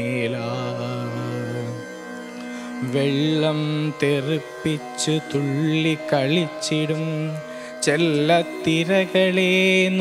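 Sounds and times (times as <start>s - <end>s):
young man singing a long note: 0.0s - 10.0s.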